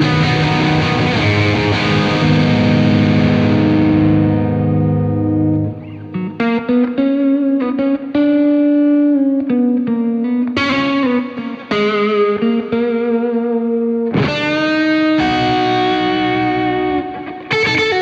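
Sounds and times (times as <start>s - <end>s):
electric guitar blues lead: 0.0s - 18.0s
electric guitar chord ringing: 0.0s - 18.0s.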